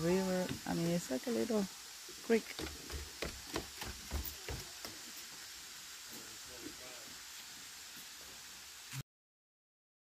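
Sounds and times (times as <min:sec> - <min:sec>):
water trickling down rock: 0:00.0 - 0:08.3
sharp knocks: 0:02.5 - 0:05.0.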